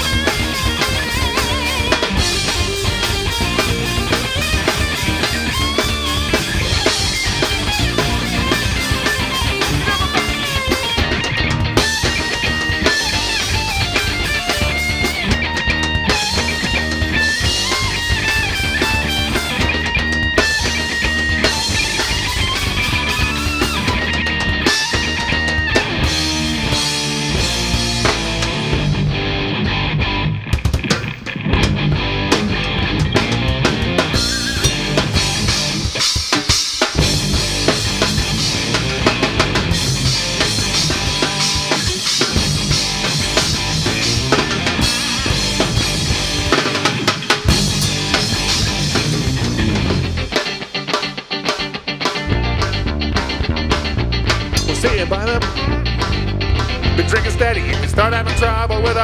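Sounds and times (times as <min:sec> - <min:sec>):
bass guitar: 0:00.0 - 0:59.0
drum kit hits: 0:00.0 - 0:59.0
electric guitar: 0:00.0 - 0:59.0.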